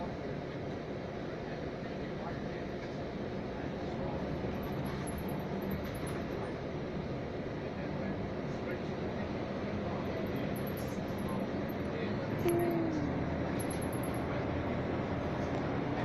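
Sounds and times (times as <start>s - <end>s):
vehicle engine and road noise: 2.6s - 16.0s.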